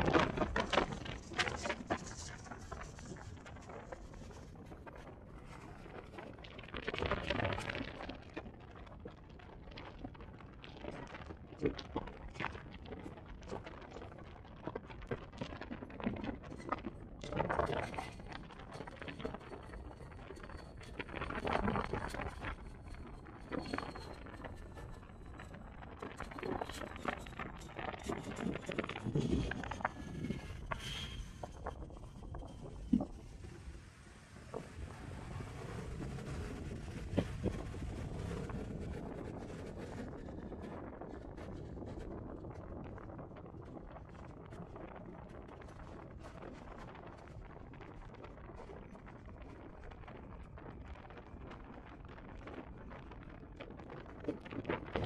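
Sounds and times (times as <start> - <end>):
wind rushing over microphone: 34.4 - 44.6.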